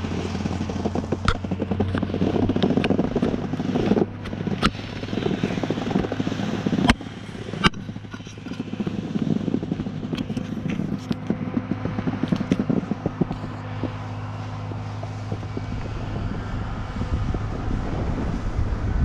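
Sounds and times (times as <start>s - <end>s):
snowboard scraping over snow: 0.0s - 19.0s.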